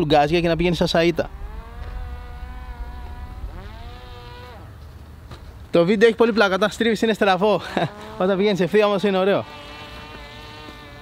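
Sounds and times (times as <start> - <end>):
drone propeller humming: 0.0 - 5.7
wind rumbling on microphone: 0.0 - 6.9.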